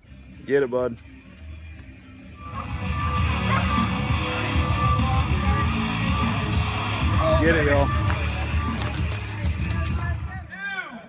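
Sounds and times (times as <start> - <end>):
outdoor noise: 0.0 - 11.0
music with heavy bass: 2.3 - 10.3.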